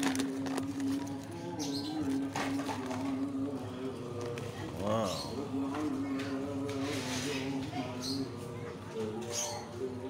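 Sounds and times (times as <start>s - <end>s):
plastic bag rustling: 0.0s - 3.3s.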